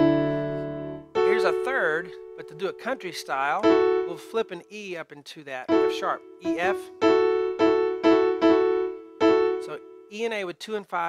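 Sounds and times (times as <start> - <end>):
digital piano notes: 0.0 - 5.0, 5.6 - 10.4.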